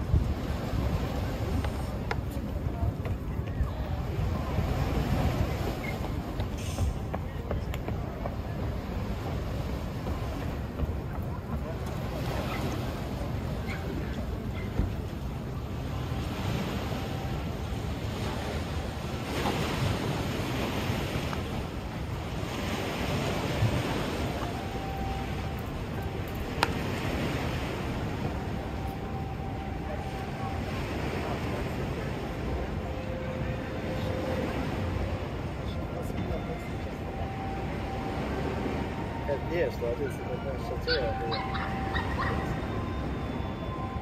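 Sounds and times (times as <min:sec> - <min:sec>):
river water washing against pier: 0:00.0 - 0:44.0.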